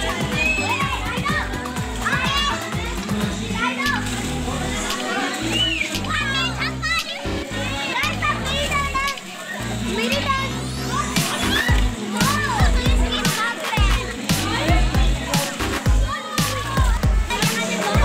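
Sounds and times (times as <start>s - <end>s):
background music with bass line: 0.0s - 18.0s
children shouting and squealing: 0.0s - 18.0s
water splashing: 0.0s - 18.0s.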